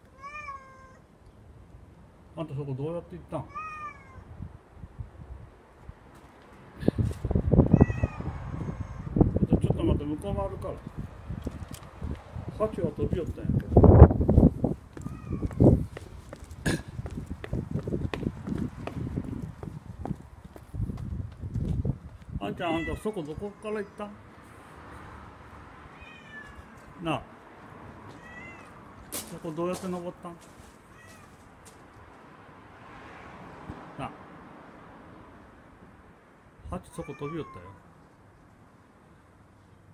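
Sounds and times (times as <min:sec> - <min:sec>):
kitten meowing: 0:00.1 - 0:01.0, 0:03.5 - 0:04.2, 0:07.7 - 0:09.1, 0:15.0 - 0:15.6, 0:22.6 - 0:23.7, 0:26.0 - 0:26.7, 0:28.2 - 0:28.8, 0:36.9 - 0:37.8
close knocks and scuffs: 0:14.3 - 0:22.3, 0:29.0 - 0:32.1.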